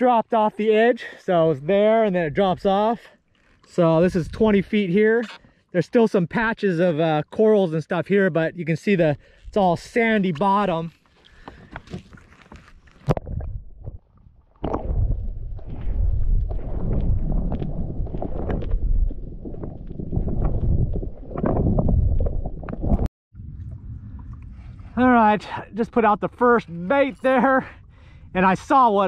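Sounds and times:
small underwater clicks and knocks: 11.0 - 14.9, 15.6 - 23.1
muffled underwater rumble: 13.1 - 25.2.

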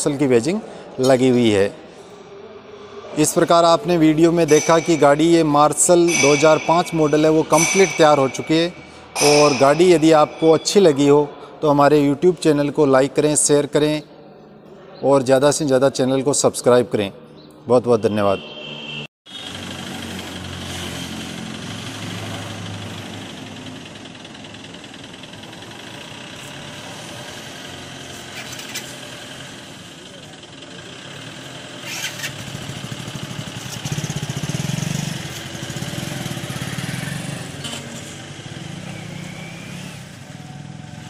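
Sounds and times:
diesel engine driving by: 19.4 - 41.0.

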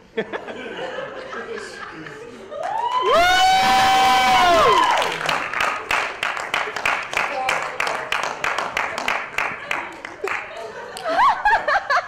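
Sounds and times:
audience laughing: 0.0 - 2.7, 9.3 - 12.0
audience clapping: 2.0 - 11.9.

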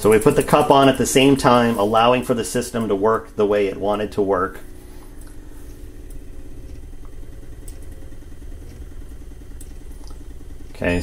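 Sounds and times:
powder trickler motor hum: 0.0 - 11.0.

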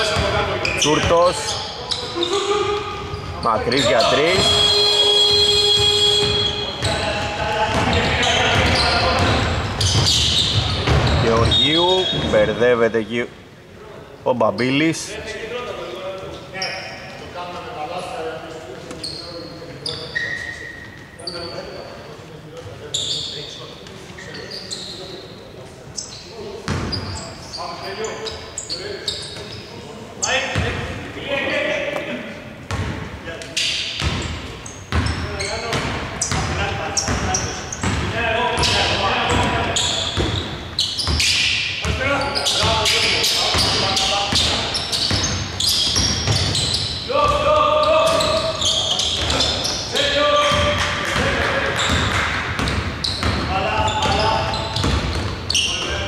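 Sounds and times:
shoe squeaks: 0.0 - 13.2, 16.3 - 17.2, 18.8 - 30.7, 33.5 - 50.8, 51.7 - 56.0
players' voices: 0.0 - 56.0
ball bouncing on wooden court: 7.7 - 12.4, 34.0 - 42.0, 43.5 - 48.5, 50.4 - 55.5.

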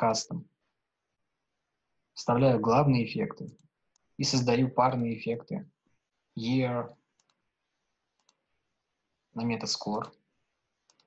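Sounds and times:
computer mouse clicks: 3.4 - 4.1, 7.1 - 7.5, 8.1 - 8.5, 10.8 - 11.0.

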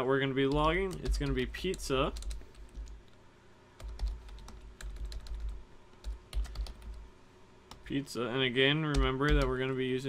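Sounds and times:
keyboard keys clicking: 0.5 - 3.0, 3.8 - 7.0.

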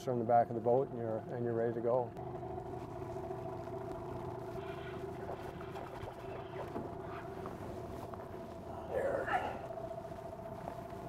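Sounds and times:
outboard motor running: 0.0 - 11.0.

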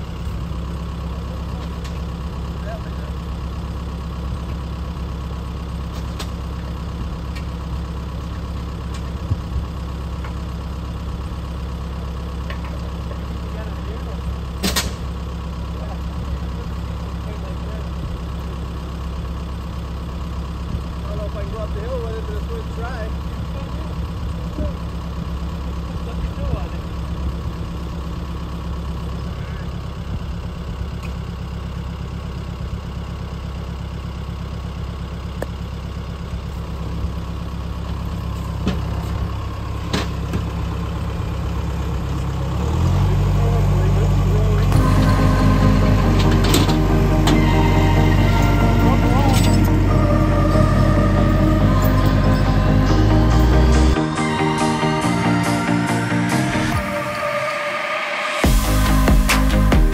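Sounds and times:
tractor engine idling: 0.0 - 59.9.

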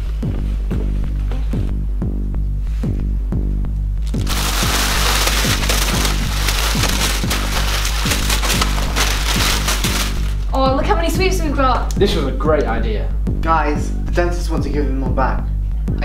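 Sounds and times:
plastic packets crinkling: 4.1 - 10.6.

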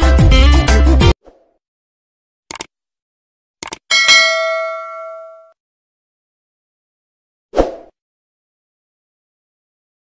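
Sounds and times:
notification bell ding: 3.9 - 5.6.

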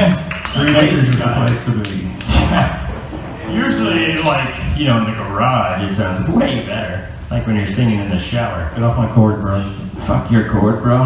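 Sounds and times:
man talking on stage: 0.0 - 11.0.

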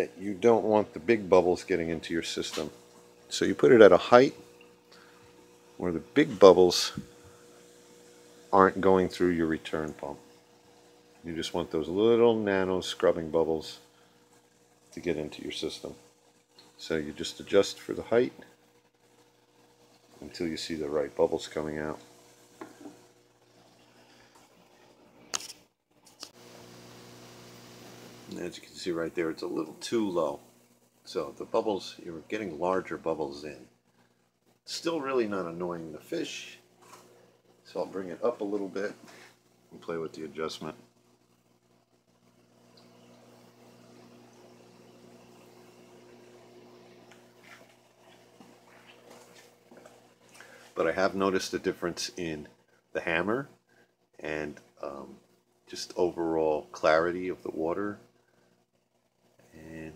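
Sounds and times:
aquarium pumps humming: 0.0 - 59.9.

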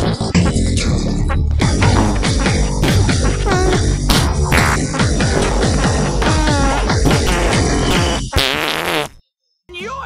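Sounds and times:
electronic dance music: 0.4 - 3.8
fart sound effect: 1.3 - 9.2.

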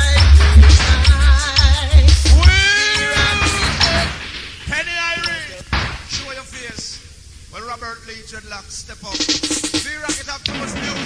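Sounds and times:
wailing vocal note: 0.0 - 4.2
reggae music with heavy bass: 0.0 - 6.3, 9.1 - 11.0.

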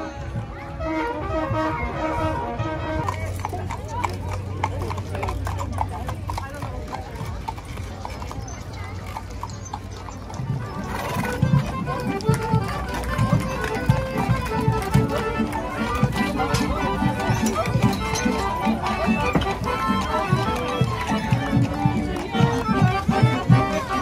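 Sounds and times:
music: 0.0 - 3.3, 10.8 - 24.0
crowd voices: 0.0 - 24.0
horse hooves clip-clopping on asphalt: 2.6 - 24.0.

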